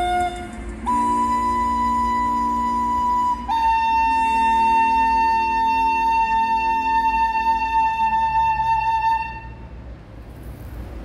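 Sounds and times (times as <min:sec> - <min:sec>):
tin whistle high note: 0:00.0 - 0:09.6.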